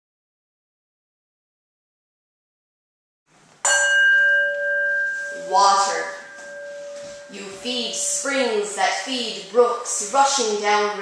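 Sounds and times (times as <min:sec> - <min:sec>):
bell ringing: 0:03.7 - 0:09.1.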